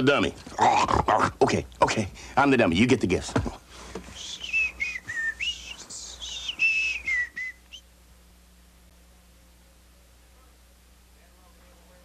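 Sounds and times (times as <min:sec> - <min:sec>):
person whistling a tune: 0:04.1 - 0:07.8.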